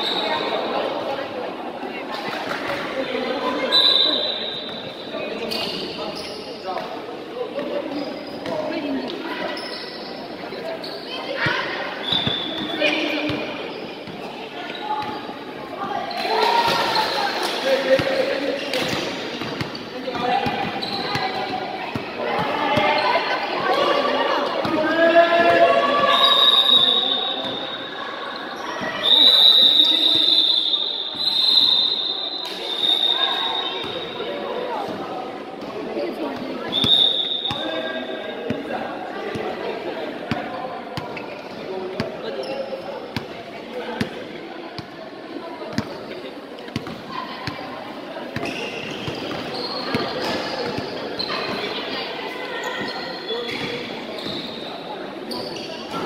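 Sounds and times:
players and spectators voices: 0.0 - 56.0.

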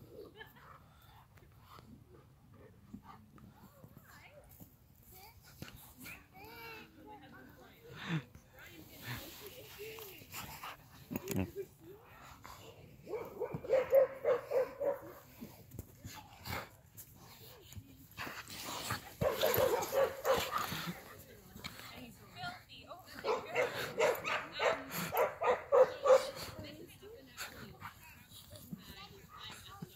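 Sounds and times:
dog play growls and yips: 18.2 - 21.2.

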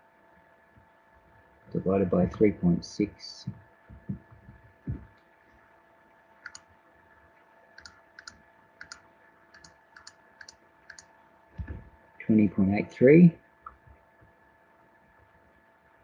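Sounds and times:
faint steady hum: 0.0 - 16.0
computer mouse clicking: 6.4 - 6.7, 7.8 - 11.8.

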